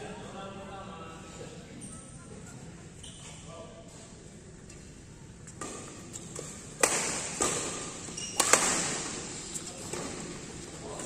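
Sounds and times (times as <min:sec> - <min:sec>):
racket hitting shuttlecock: 0:05.6 - 0:10.4.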